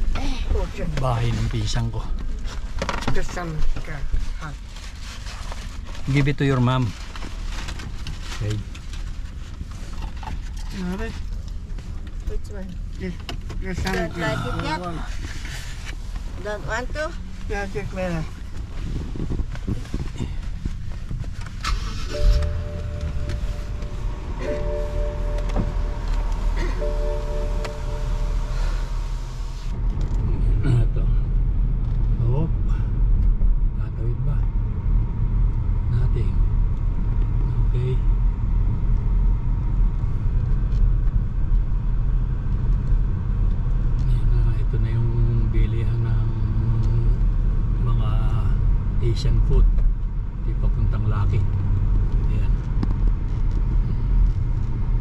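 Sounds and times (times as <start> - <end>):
car engine and tyre rumble: 0.0 - 55.0
held tones: 22.0 - 29.7.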